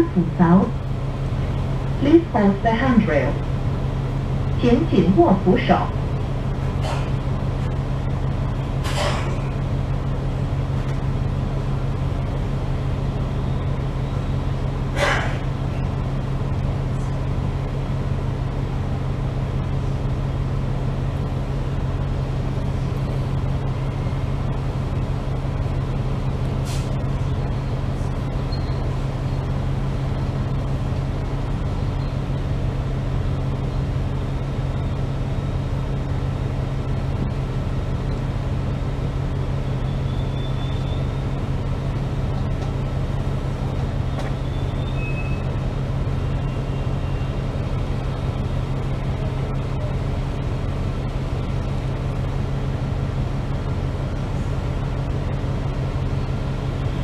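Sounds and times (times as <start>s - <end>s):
bus engine hum: 0.0s - 57.0s.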